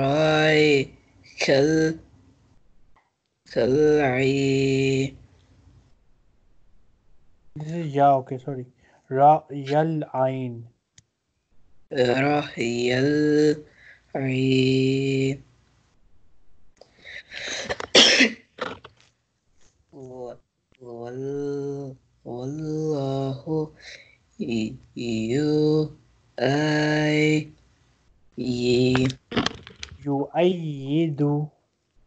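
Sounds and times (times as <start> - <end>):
man chanting: 0.0 - 2.0, 3.5 - 5.2, 7.6 - 10.6, 11.9 - 15.4, 20.0 - 27.5, 28.4 - 29.2, 30.0 - 31.5
person coughing: 17.4 - 18.9.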